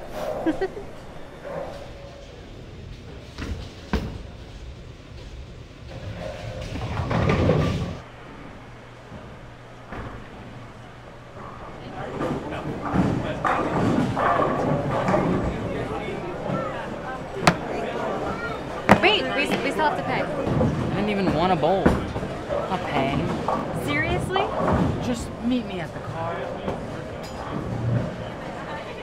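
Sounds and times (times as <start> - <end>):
bowling ball rolling: 3.0 - 8.0, 11.4 - 25.4
crowd chatter: 9.9 - 29.0
sharp thud: 17.4 - 17.7.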